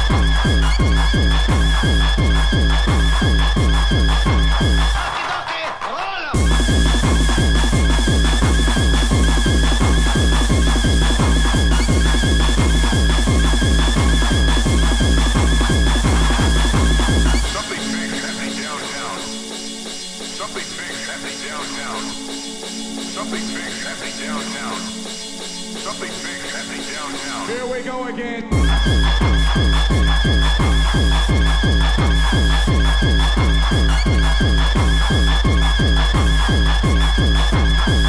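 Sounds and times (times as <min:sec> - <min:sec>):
pounding techno kick drum: 0:00.0 - 0:27.7, 0:28.5 - 0:38.0
swooping synth sounds: 0:06.4 - 0:38.0.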